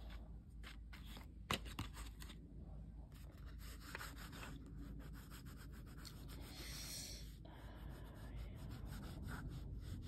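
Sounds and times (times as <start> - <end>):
eraser rubbing on paper: 8.0 - 10.0.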